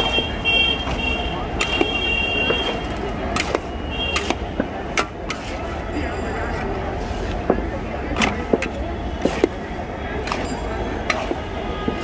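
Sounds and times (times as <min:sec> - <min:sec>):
murmur of voices: 0:00.0 - 0:12.0
street traffic hum: 0:00.0 - 0:12.0.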